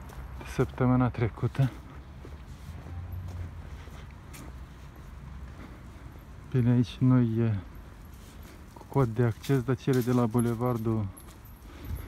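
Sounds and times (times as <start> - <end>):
footsteps walking: 0.0 - 6.6, 7.6 - 12.0.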